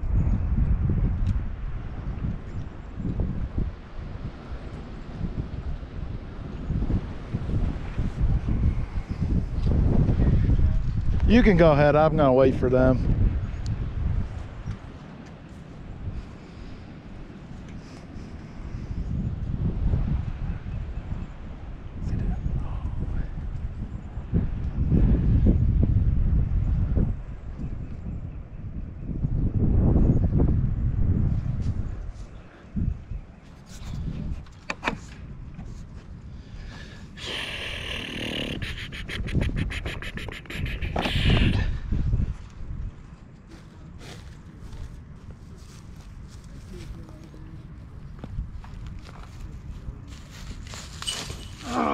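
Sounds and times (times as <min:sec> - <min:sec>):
wind buffeting microphone: 0:00.0 - 0:51.9.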